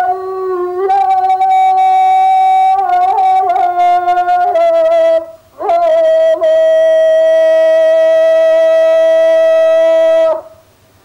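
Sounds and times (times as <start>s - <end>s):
wind instrument long note: 0.0s - 10.6s.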